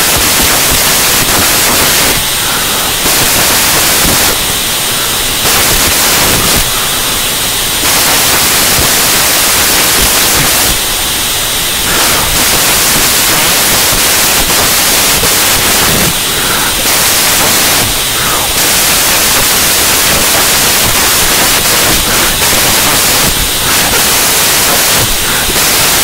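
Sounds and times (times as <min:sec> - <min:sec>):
loud static hiss: 0:00.0 - 0:26.0.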